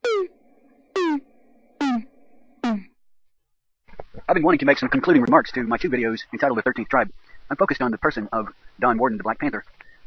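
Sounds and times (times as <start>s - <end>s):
falling synthesizer tone: 0.0s - 2.9s.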